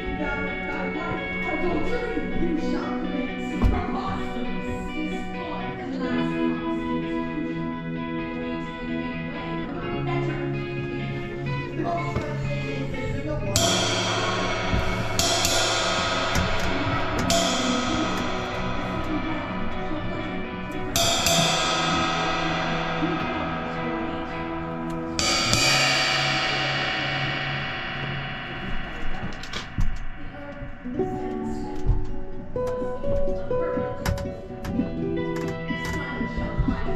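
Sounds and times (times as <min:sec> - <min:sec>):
held low notes: 0:00.0 - 0:36.9
crash cymbals ringing: 0:11.2 - 0:33.5
sharp drum hits: 0:13.6 - 0:33.0.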